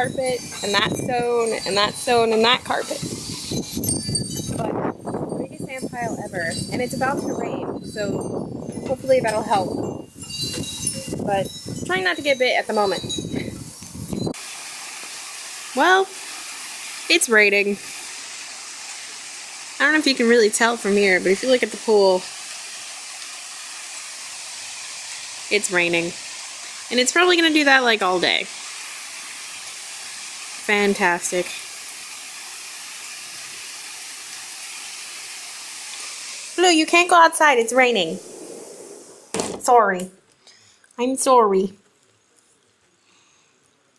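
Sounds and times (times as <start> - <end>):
light rain hiss: 0.0 - 43.9
outdoor rustling: 0.0 - 43.9.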